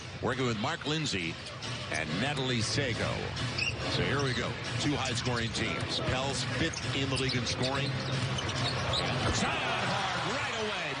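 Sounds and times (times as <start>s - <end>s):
crowd noise: 0.9s - 11.0s.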